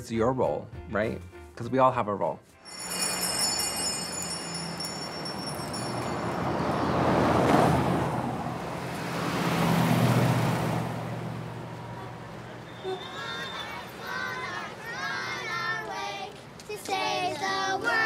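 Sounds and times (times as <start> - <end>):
faint high ringing tones: 2.6 - 7.3
vehicles passing: 2.7 - 18.0.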